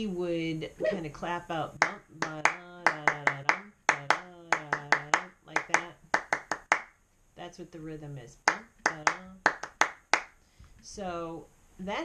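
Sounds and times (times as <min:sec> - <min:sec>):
woman chanting rhythm syllables: 0:00.0 - 0:06.8, 0:07.4 - 0:10.2, 0:10.8 - 0:12.0
hand claps: 0:01.8 - 0:07.0, 0:08.4 - 0:10.4.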